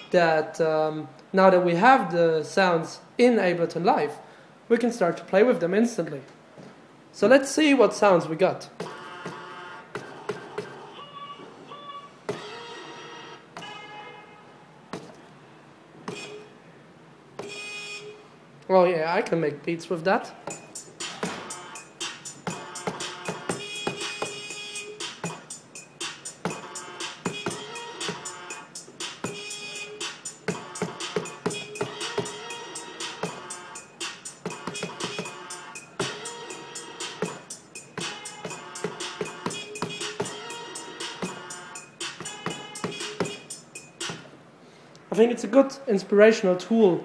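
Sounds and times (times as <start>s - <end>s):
rapid percussive hits: 20.5s - 36.3s, 37.0s - 44.3s
pitched horn samples: 21.1s - 25.0s, 26.5s - 43.6s.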